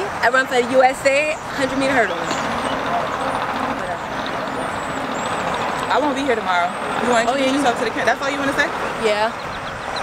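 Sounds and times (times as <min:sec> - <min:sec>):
faint voices: 0:00.0 - 0:09.6
steady rushing noise: 0:00.0 - 0:10.0.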